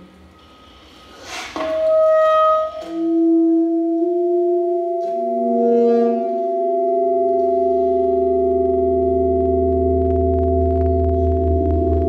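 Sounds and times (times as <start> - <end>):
saxophone and electronics drone: 1.7 - 12.0
low pulsing hum: 3.1 - 12.0.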